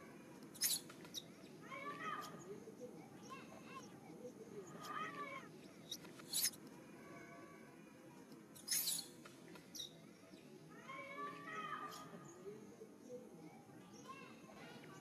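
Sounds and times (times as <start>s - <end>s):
monkeys squealing: 0.6s - 1.2s, 4.8s - 6.6s, 8.6s - 9.1s.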